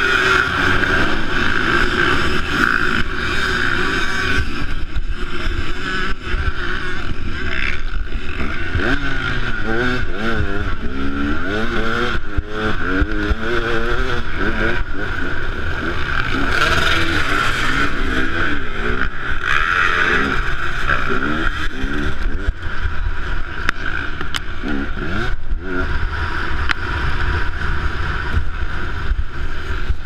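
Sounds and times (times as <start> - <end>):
dirt bike engines running: 0.0 - 30.0
motorcycle engine revving: 0.0 - 30.0.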